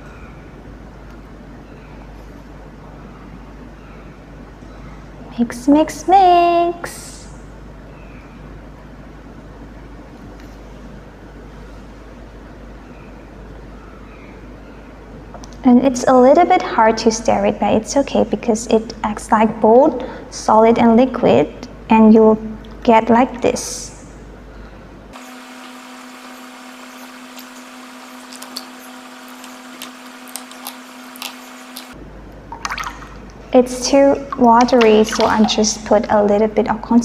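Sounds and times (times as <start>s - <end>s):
steady hum: 0.0s - 37.0s.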